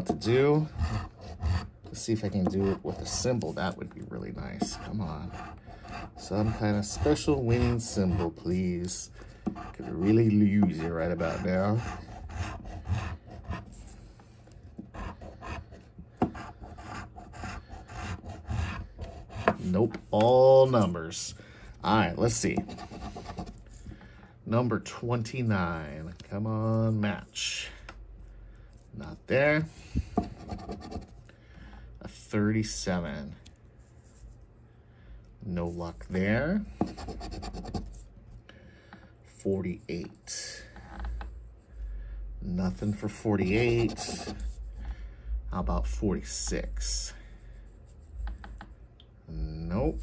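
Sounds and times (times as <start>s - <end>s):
coin scratching lottery ticket: 0.2s - 3.6s, 4.3s - 8.6s, 9.6s - 13.8s.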